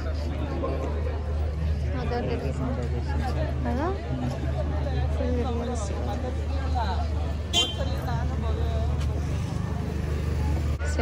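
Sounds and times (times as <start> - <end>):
low traffic rumble: 0.0 - 11.0
people talking in background: 0.0 - 11.0.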